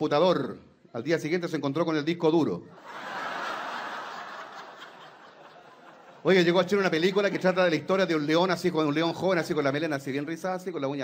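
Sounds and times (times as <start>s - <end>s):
audience laughing: 2.8s - 7.9s.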